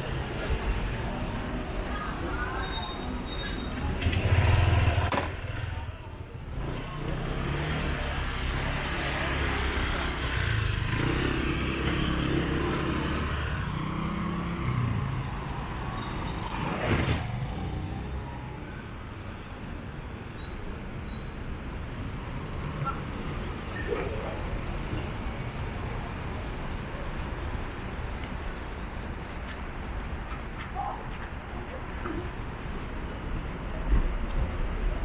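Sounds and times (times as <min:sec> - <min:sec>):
passers-by voices: 0:00.0 - 0:20.2
background traffic: 0:00.0 - 0:35.0
car engines passing: 0:03.8 - 0:35.0.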